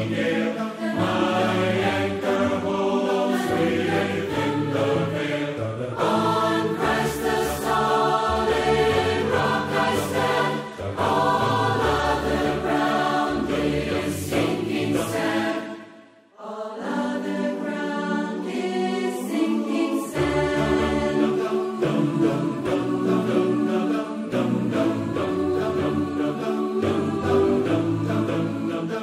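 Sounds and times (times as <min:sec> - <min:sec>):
large choir singing sustained chords: 0:00.0 - 0:29.0.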